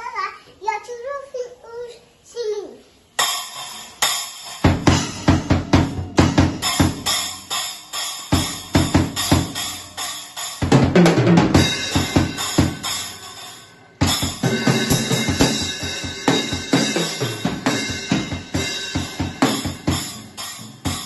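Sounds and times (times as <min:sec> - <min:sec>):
drum fill: 0:03.2 - 0:21.0
bass drum and snare beat: 0:04.6 - 0:07.7, 0:08.3 - 0:13.3, 0:14.0 - 0:21.0
cymbal crash: 0:11.4 - 0:21.0.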